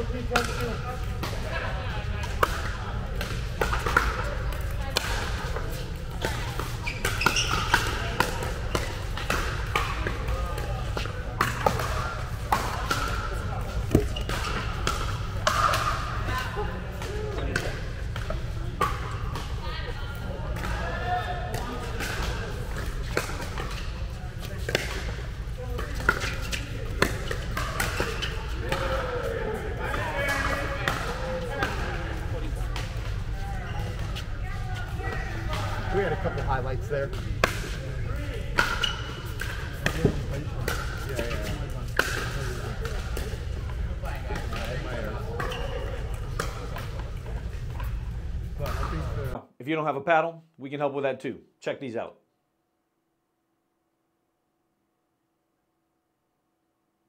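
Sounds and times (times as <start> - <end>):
players' voices: 0.0 - 52.1
paddles striking plastic ball: 13.7 - 15.8.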